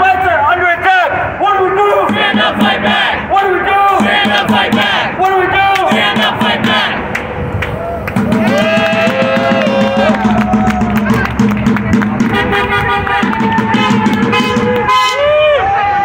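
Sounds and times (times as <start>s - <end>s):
crowd chanting: 1.6s - 7.2s.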